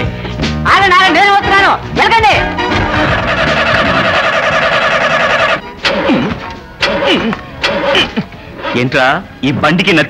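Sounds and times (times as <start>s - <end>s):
car engine turning over: 2.5s - 8.2s.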